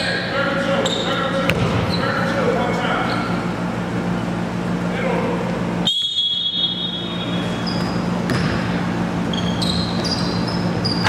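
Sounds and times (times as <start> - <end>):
echoing gym din: 0.0 - 3.4
sneakers squeaking on court: 0.8 - 3.5, 6.7 - 11.0
basketball bouncing: 1.5 - 2.0, 8.2 - 8.8.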